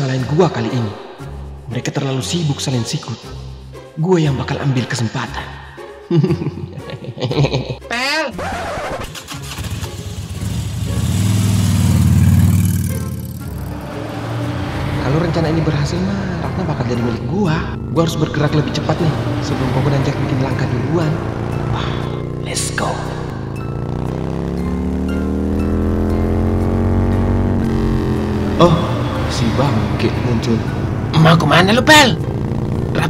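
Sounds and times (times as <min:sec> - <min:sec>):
motor scooter engine pulling away: 0:09.1 - 0:22.5, 0:23.2 - 0:33.0.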